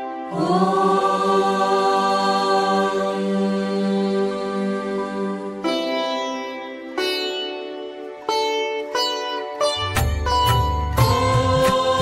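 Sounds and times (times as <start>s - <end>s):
devotional instrumental music: 0.0s - 12.0s.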